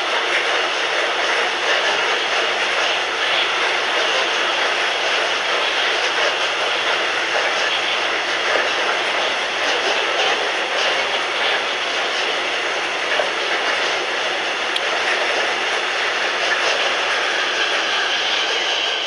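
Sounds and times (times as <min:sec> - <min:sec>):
freight train rolling on rails: 0:00.0 - 0:19.0.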